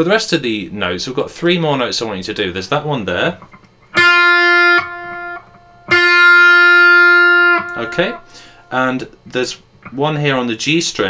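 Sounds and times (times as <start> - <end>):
electric guitar single notes: 3.4 - 9.0.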